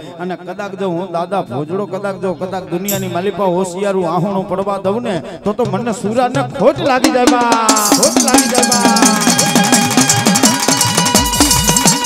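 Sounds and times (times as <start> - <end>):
held instrumental tones: 2.8 - 12.0
hourglass drum fast beat: 2.9 - 3.8, 5.5 - 12.0
rapid metallic tapping: 7.4 - 12.0.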